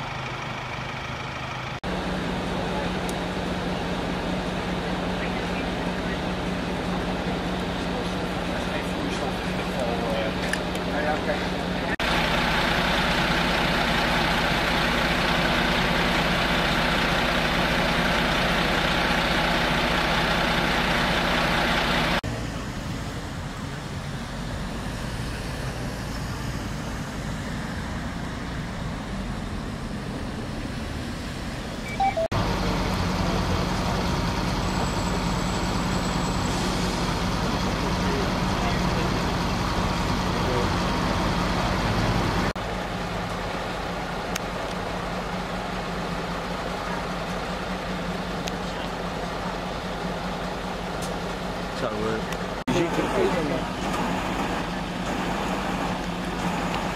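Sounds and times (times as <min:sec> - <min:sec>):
truck engine idling: 0:00.0 - 0:25.1, 0:25.7 - 0:56.9.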